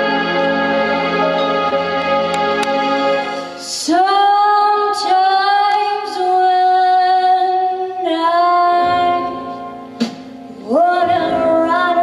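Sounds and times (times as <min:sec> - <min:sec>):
pop backing track: 0:00.0 - 0:12.0
girl singing into microphone: 0:03.6 - 0:09.8, 0:10.6 - 0:12.0.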